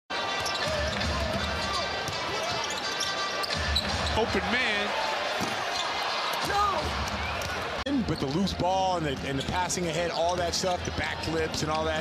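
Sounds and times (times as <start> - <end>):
arena crowd voices: 0.1 - 12.0.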